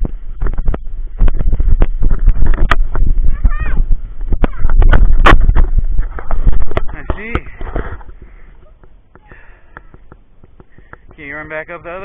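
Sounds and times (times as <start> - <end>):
skate wheels rolling on asphalt: 0.0 - 12.0
wind buffeting microphone: 0.0 - 12.0.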